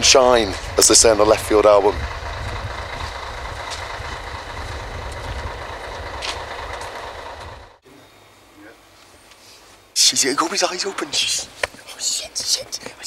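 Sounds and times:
large vehicle engine rumbling: 0.0s - 7.9s.

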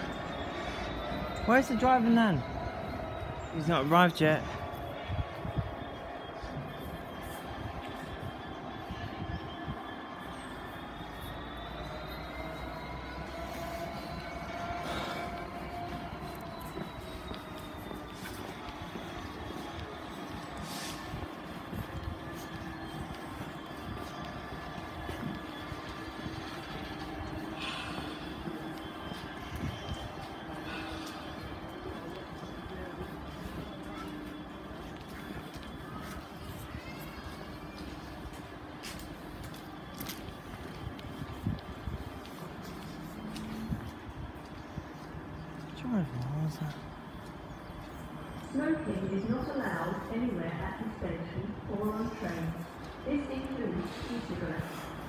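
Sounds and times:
train engines humming: 0.0s - 55.0s.

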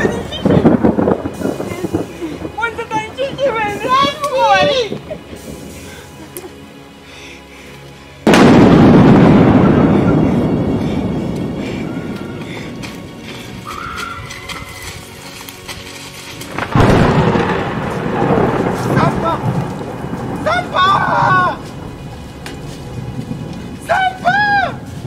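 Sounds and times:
deep thunder-like boom: 0.0s - 5.9s, 8.2s - 13.2s, 16.6s - 25.0s
loud crash: 8.3s - 11.2s.

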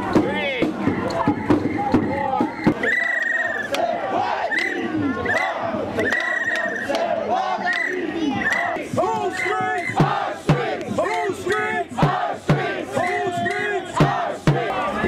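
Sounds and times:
drum hits with sticks: 0.0s - 2.8s, 9.0s - 12.8s, 13.4s - 14.8s
crowd shouting a protest chant: 0.0s - 15.0s.

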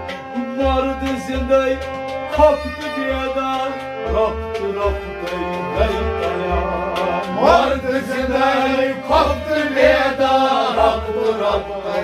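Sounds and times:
bowed fiddle: 0.0s - 12.0s
harmonium: 0.0s - 12.0s
rabab plucking: 0.0s - 12.0s
steady low beat: 0.0s - 12.0s
men singing devotional song: 0.4s - 12.0s.

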